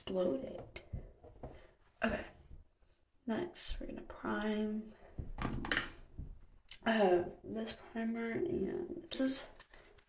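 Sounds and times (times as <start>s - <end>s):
young woman speaking: 0.0s - 1.0s, 2.0s - 2.4s, 3.2s - 5.0s, 6.7s - 9.6s.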